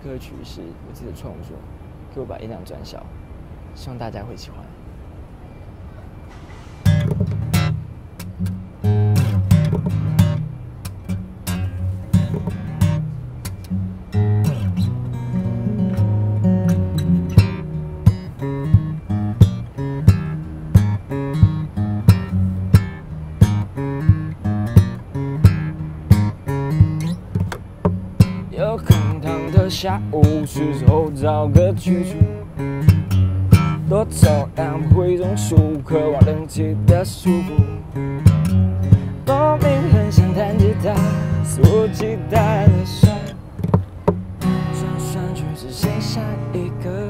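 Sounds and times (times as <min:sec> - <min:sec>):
fingerpicked acoustic guitar: 0:06.3 - 0:47.0.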